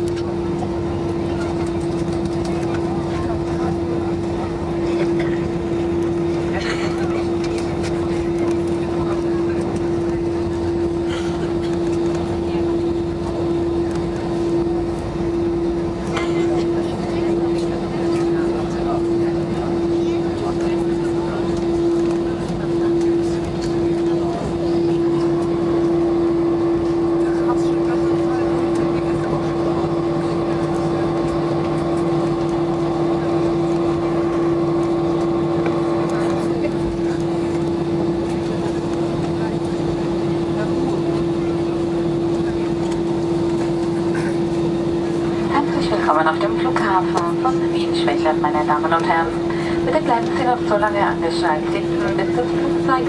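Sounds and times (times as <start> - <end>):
jet engines idling rumble: 0.0 - 53.0.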